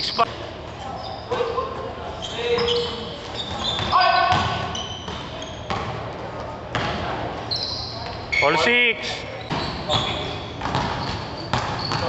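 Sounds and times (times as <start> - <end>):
sneakers squeaking on floor: 0.0 - 6.0, 6.7 - 12.0
basketball bouncing on court: 3.4 - 6.0, 6.7 - 7.1, 9.5 - 12.0.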